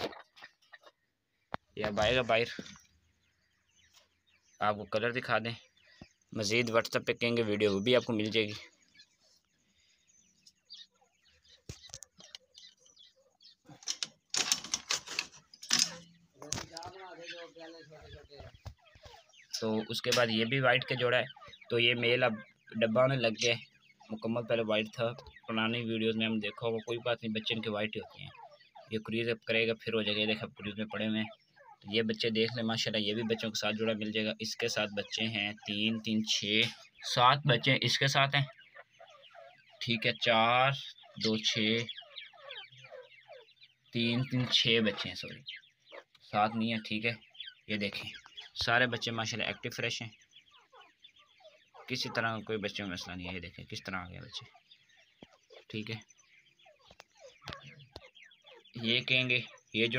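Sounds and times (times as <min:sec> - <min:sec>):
chicks peeping: 0:00.0 - 0:59.9
metal bird cage rattling: 0:13.7 - 0:16.2.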